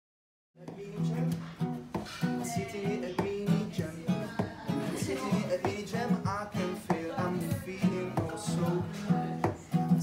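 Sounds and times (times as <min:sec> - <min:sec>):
strummed acoustic guitar: 0:00.6 - 0:10.0.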